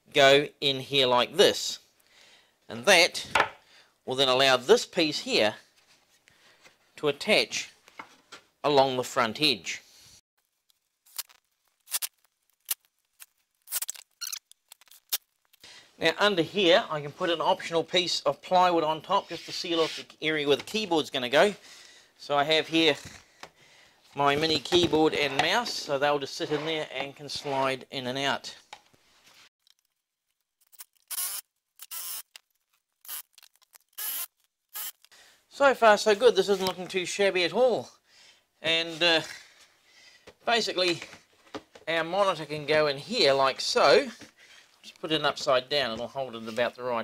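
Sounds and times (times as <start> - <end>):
wood scraping rub: 19.1 - 20.2.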